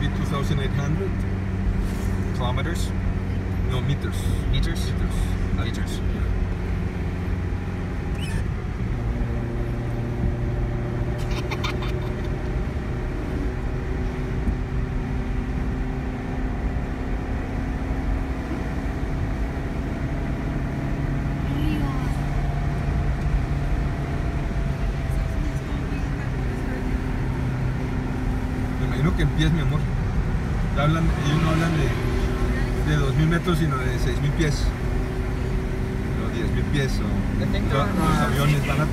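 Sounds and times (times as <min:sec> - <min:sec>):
car engine running: 0:00.0 - 0:38.9
tyres rolling on highway: 0:00.0 - 0:38.9.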